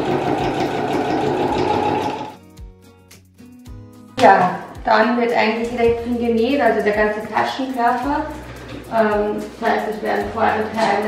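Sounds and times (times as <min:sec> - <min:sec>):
sewing machine stitching: 0:00.0 - 0:02.4
soft background music: 0:02.3 - 0:11.0.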